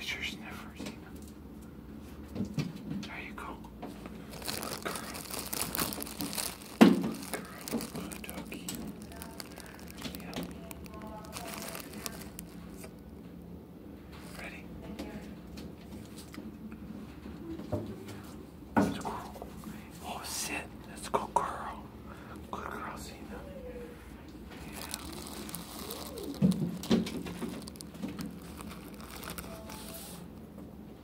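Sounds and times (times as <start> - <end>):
rustling and crinkling handling noise: 0.6 - 13.4, 14.0 - 21.5, 22.3 - 30.8.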